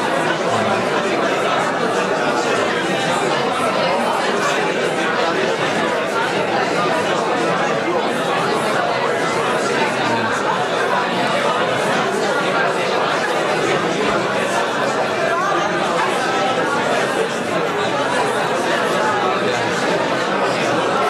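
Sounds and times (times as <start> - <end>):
babble of voices: 0.0 - 21.0.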